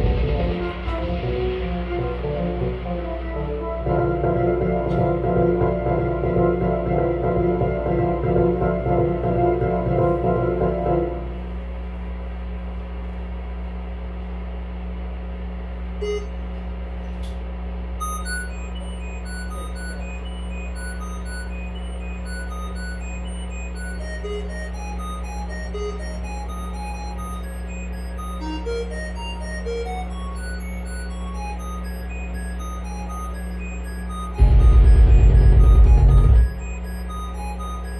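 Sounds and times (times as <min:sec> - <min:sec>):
loud electronic music: 0:00.0 - 0:08.8, 0:34.4 - 0:36.9
low electronic hum: 0:00.0 - 0:37.9
faint synthesizer tones: 0:18.0 - 0:37.9.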